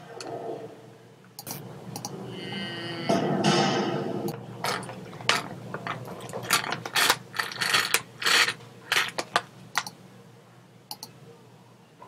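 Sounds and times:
mouse and keyboard clicking: 0:09.1 - 0:10.0, 0:10.9 - 0:11.1.

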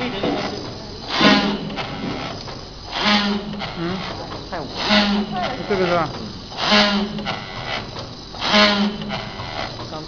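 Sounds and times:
packing machine noise bursts: 0:00.0 - 0:10.0
steady low hum: 0:00.0 - 0:10.0.

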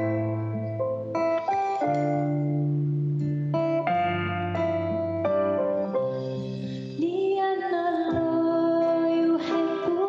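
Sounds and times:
keyboard chords: 0:00.0 - 0:07.4
acoustic guitar chords: 0:00.0 - 0:10.0.

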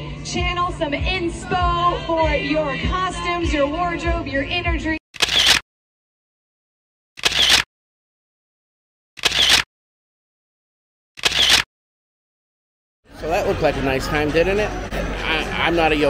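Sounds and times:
camera shutter clicks: 0:05.2 - 0:05.6, 0:07.2 - 0:07.7, 0:09.2 - 0:09.7, 0:11.2 - 0:11.7.

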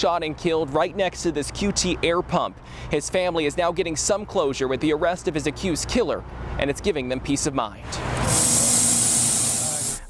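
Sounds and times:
compressed air hissing: 0:08.0 - 0:10.0
person talking: 0:09.4 - 0:10.0.

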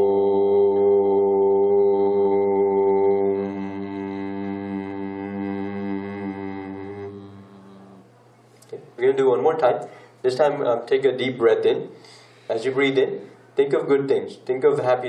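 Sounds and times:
voices chanting om: 0:00.0 - 0:08.2.

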